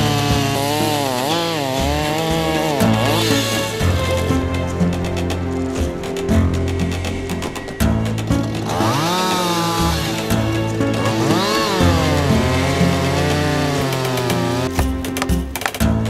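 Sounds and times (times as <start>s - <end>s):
chainsaw revving and cutting: 0.0s - 15.7s
background music: 0.0s - 16.0s.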